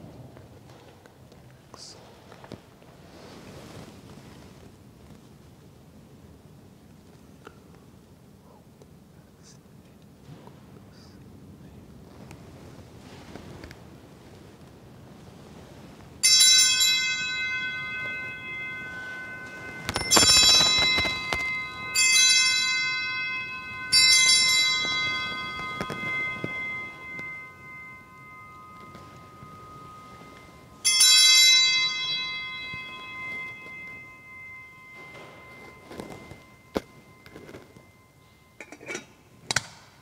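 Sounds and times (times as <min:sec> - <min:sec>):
altar bell ringing: 0:15.2 - 0:40.0.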